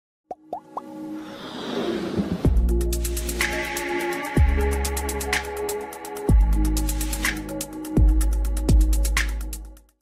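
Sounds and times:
intro music: 2.2s - 9.8s.

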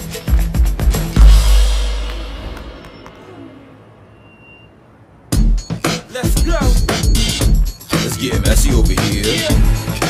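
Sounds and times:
faint street background noise: 1.7s - 10.0s.

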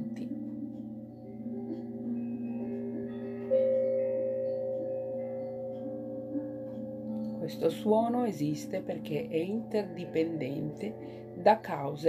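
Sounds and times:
ringing bell-like meditation music: 0.0s - 12.0s.

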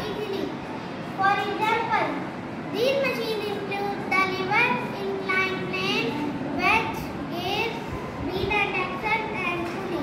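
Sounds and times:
girl talking: 0.0s - 10.0s.

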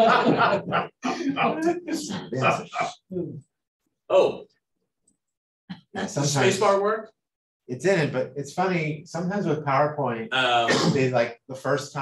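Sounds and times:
person talking over video call: 0.0s - 3.4s, 4.1s - 4.6s, 5.7s - 12.0s.

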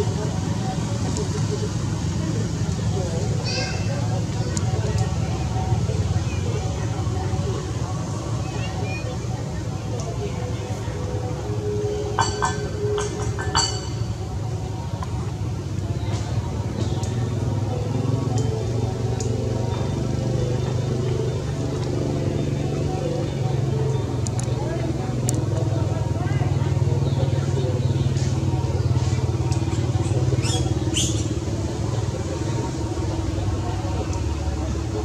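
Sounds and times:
indistinct voices: 0.0s - 35.0s
low motor hum: 0.0s - 35.0s.

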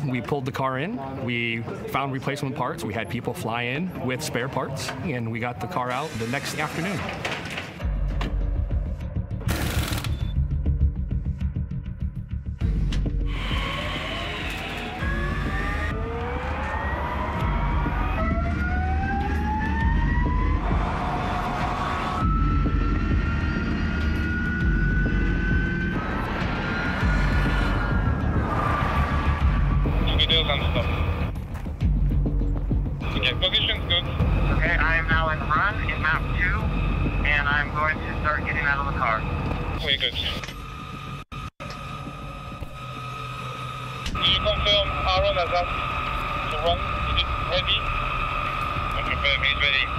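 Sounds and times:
electric car whining accelerating: 13.1s - 31.4s, 40.4s - 49.9s.

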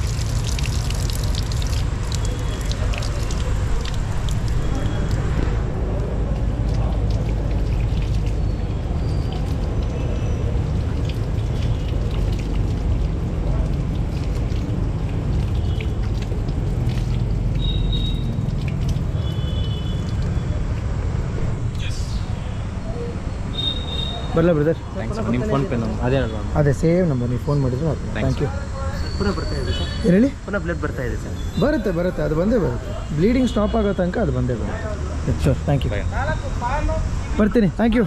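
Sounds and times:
tap water running over hands: 0.0s - 21.0s
water splashing onto concrete: 0.0s - 22.0s.

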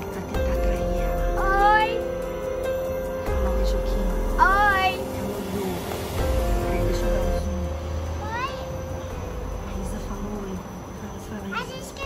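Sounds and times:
crickets trilling: 0.0s - 12.0s
low hum: 0.0s - 12.0s.

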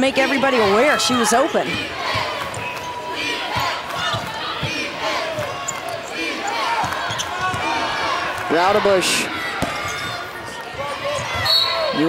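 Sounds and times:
sneakers squeaking: 0.0s - 8.2s, 9.3s - 12.0s
crowd in background: 0.0s - 12.0s.

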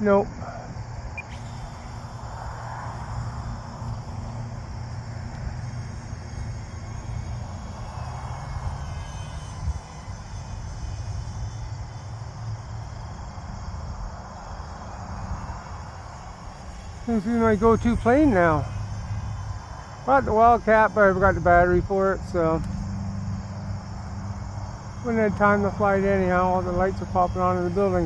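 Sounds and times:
crickets chirping: 0.0s - 28.0s
model jet fans whining: 0.0s - 28.0s.

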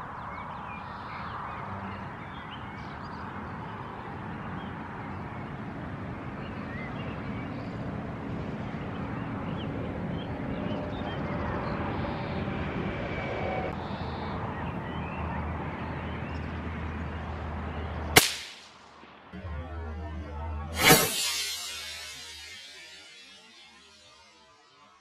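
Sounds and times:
rifle shot: 18.2s - 18.8s.

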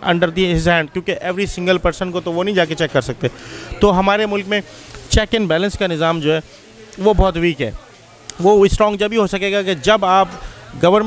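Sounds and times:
man speaking: 0.0s - 7.8s, 8.4s - 11.0s.

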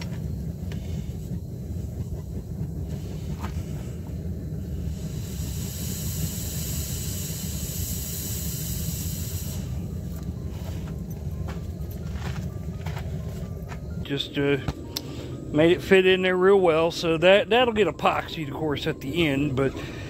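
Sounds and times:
hot metal hissing into wood: 0.0s - 13.4s
steady low rumble: 0.0s - 20.0s.

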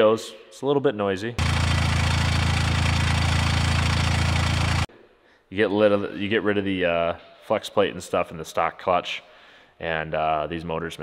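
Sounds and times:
car engine idling: 1.4s - 4.9s.

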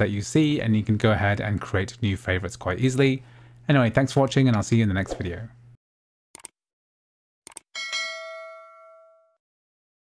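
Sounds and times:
notification bell ding: 7.8s - 9.4s.

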